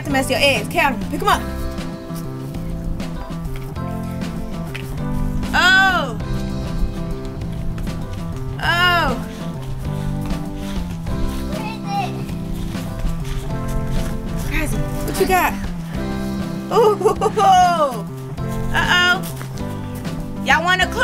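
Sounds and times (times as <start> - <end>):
background music with sustained chords: 0.0 - 21.0.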